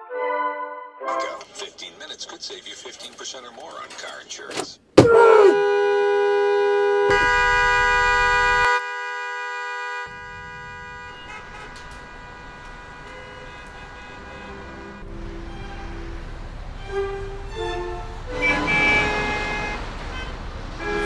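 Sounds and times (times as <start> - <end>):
traffic noise: 1.1 - 21.0
car horn long tone: 5.0 - 21.0.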